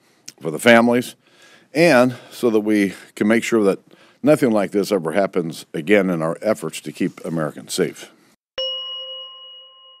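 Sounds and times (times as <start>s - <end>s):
bright chime ringing: 8.6s - 10.0s.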